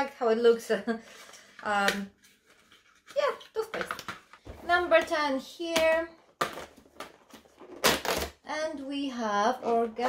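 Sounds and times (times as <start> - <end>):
cardboard ripping: 7.6 - 8.4.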